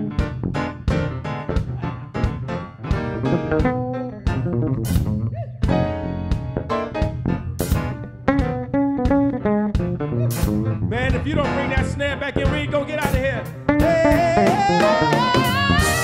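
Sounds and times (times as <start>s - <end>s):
electric bass guitar: 0.0s - 16.0s
piano: 0.0s - 16.0s.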